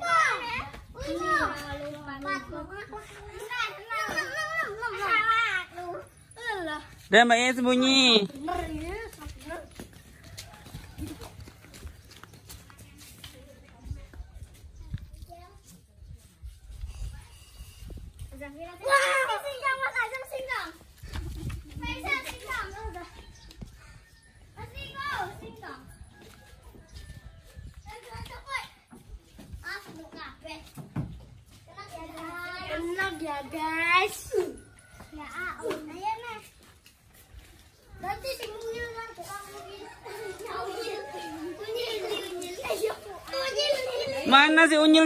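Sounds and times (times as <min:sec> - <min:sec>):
faint children's voices: 0:00.0 - 0:07.2, 0:08.4 - 0:44.4
footsteps on bare ground: 0:08.2 - 0:16.4, 0:34.5 - 0:44.6.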